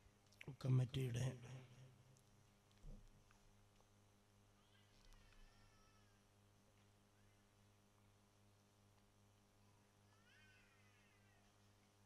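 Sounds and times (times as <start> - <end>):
low electrical hum: 0.0 - 12.0
faint high-pitched call: 4.6 - 6.2.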